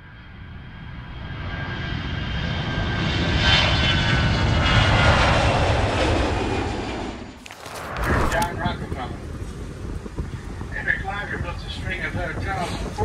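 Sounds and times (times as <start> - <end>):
jet airliner passing: 0.0 - 13.0.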